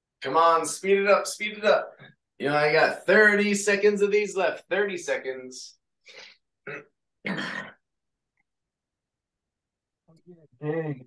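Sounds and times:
man clearing throat: 6.7 - 7.8.

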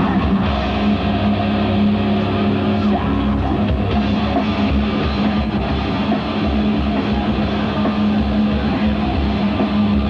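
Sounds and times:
distorted electric guitars droning: 0.0 - 10.0.

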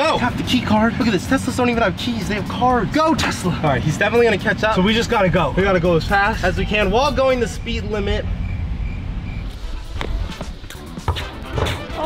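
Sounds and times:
music with steady beat: 9.4 - 12.0.

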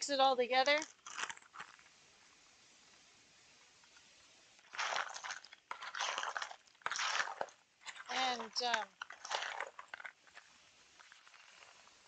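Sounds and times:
nuts rustling in plastic bowl: 0.8 - 1.9, 4.7 - 12.0.

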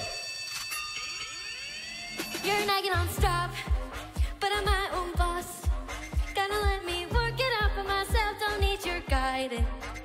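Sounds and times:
held high synth tone: 0.0 - 3.2.

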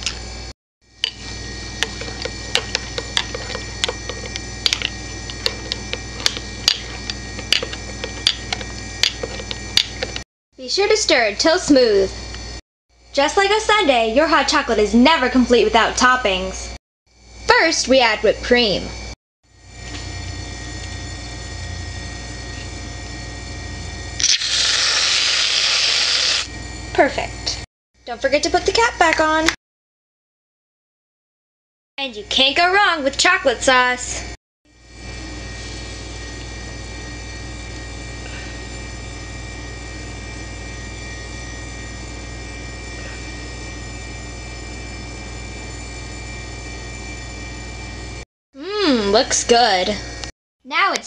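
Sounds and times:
low background hum: 0.0 - 29.6, 32.0 - 44.4, 45.2 - 51.0
aerosol can hissing: 24.3 - 26.5.

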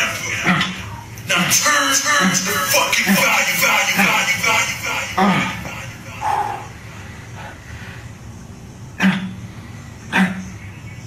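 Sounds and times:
man grunting: 0.3 - 3.4, 5.1 - 6.8.

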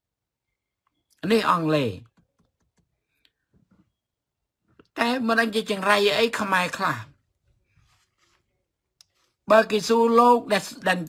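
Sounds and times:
man speaking: 1.2 - 2.1, 5.0 - 7.2, 9.5 - 11.0.

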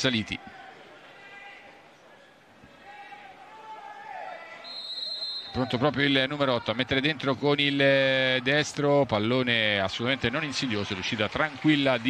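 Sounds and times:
referee's whistle: 4.6 - 5.8.

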